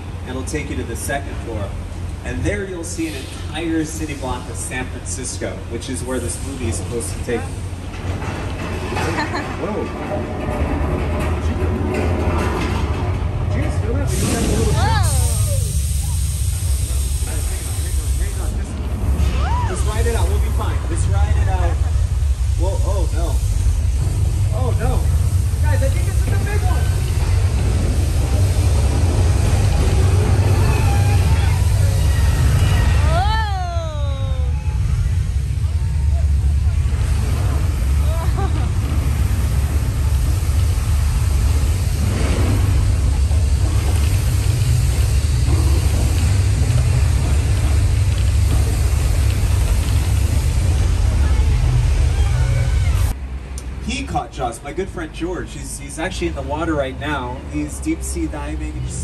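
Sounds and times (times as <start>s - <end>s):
deep steady rumble: 0.0s - 59.0s
riders' voices: 13.5s - 23.5s, 24.5s - 28.9s.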